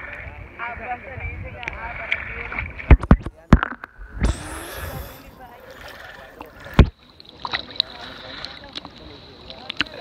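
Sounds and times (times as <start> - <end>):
water sloshing and splashing: 5.3 - 10.0.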